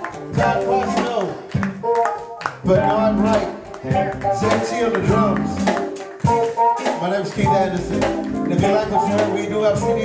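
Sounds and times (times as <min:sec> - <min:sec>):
live band playing a groove: 0:00.0 - 0:10.0.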